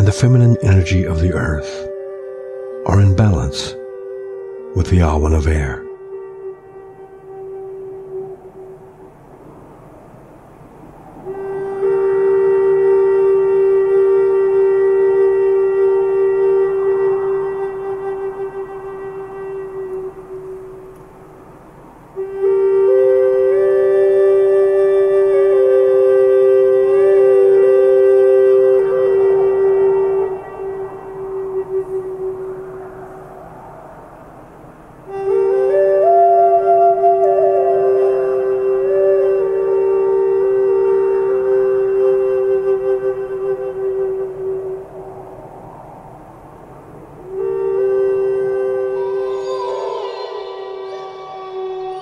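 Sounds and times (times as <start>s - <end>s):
meditation drone music: 0.0s - 52.0s.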